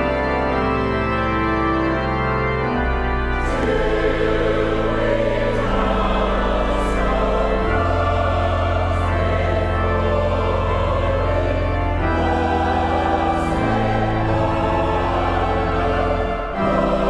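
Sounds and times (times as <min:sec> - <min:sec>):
pipe organ chords: 0:00.0 - 0:17.0
choir singing: 0:01.9 - 0:17.0.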